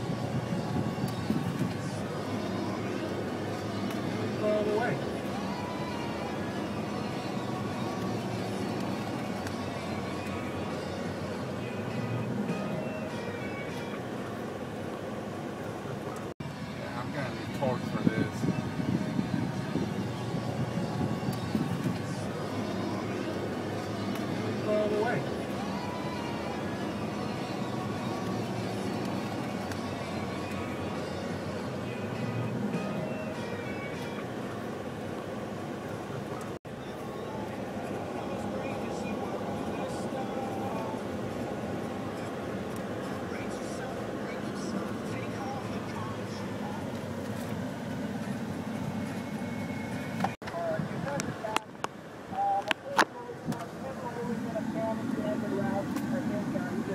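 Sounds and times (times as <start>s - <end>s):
truck engine and tyres rumbling: 0.0s - 56.9s.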